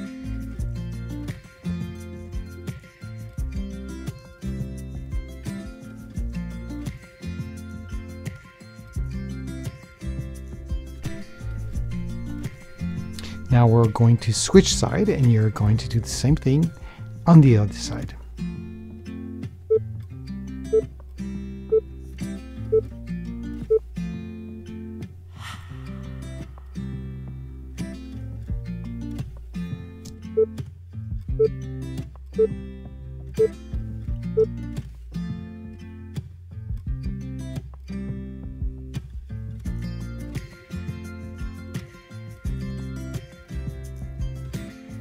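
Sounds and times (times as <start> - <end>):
acoustic guitar music with beat: 0.0 - 45.0.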